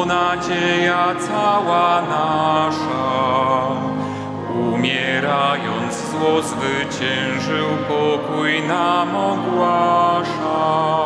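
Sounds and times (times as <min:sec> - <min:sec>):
slow hymn singing: 0:00.0 - 0:11.0.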